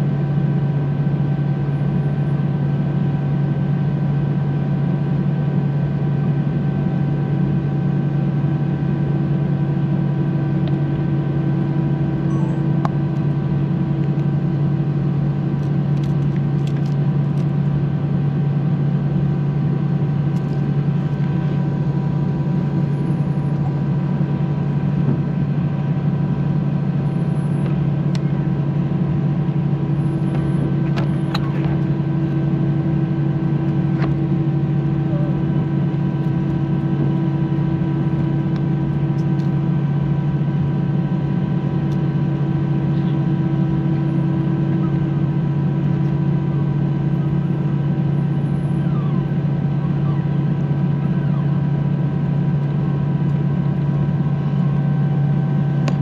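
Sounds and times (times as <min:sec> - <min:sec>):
high engine whines: 0:00.0 - 0:56.0
jet engines droning: 0:00.1 - 0:56.0.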